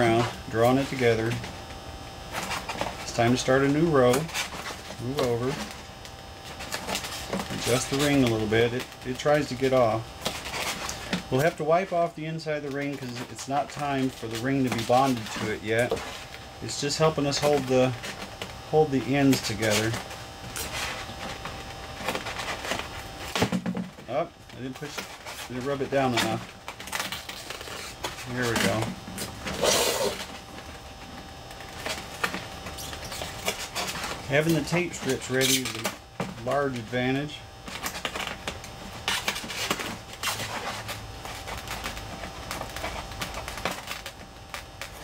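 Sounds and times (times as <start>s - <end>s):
tape crackling against foam: 0.0s - 45.0s
fingers rubbing tape on foam: 31.8s - 35.8s.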